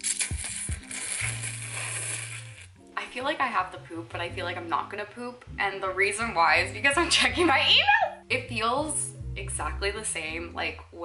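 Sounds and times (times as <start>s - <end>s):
noodles slurped: 0.0s - 2.8s
background music with low bass: 0.0s - 11.0s.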